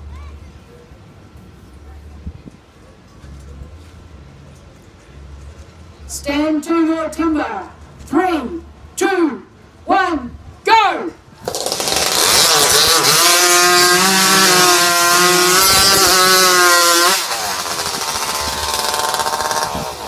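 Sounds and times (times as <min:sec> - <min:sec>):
chainsaws cutting logs: 0:11.4 - 0:20.0.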